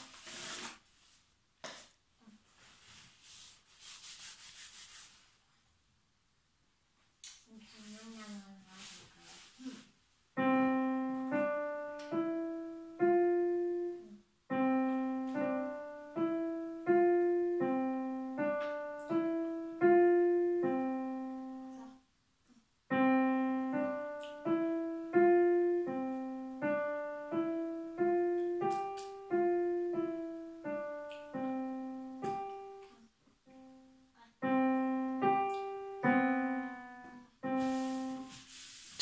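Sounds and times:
electronic keyboard melody: 10.4 - 21.9, 22.9 - 38.3.

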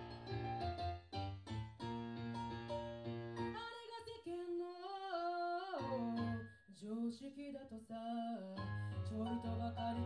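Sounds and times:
digital piano accompaniment: 0.0 - 3.7, 5.5 - 6.7, 8.6 - 10.0
woman singing a ballad: 3.5 - 10.0.

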